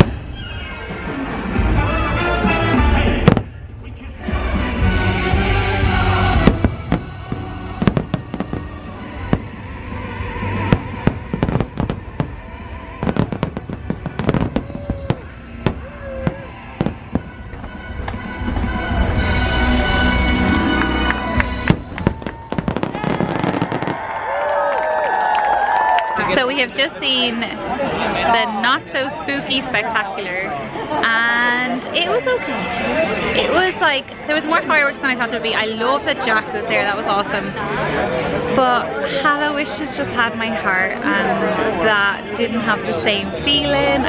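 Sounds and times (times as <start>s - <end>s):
music soundtrack: 0.0s - 23.9s
fireworks bangs and crackling: 0.0s - 24.4s.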